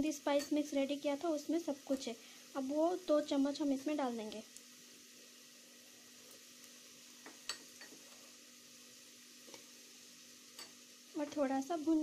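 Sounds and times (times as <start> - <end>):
onions sizzling in oil: 0.0 - 12.0.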